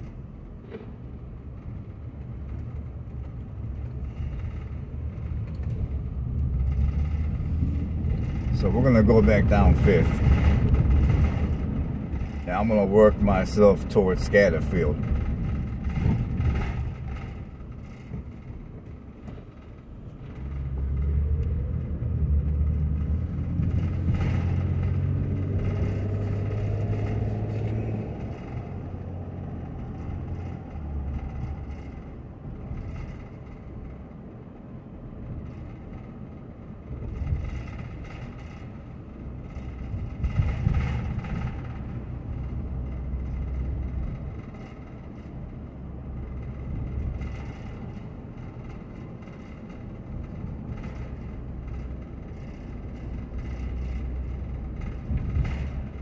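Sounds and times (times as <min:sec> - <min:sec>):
car engine from inside cabin: 0:00.0 - 0:56.0.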